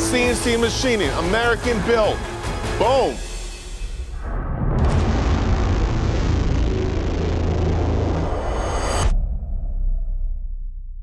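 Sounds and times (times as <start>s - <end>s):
low rumbling explosion effect: 4.1s - 11.0s.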